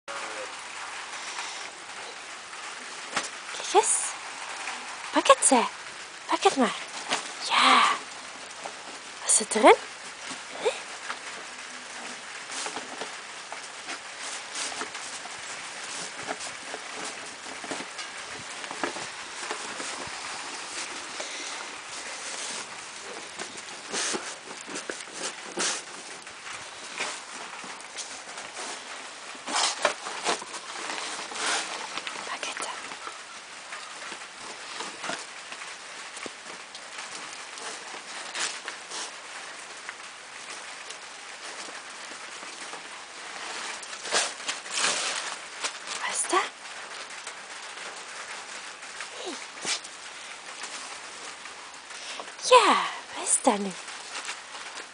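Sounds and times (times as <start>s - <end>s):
paper crackling and tearing: 10.3s - 46.2s.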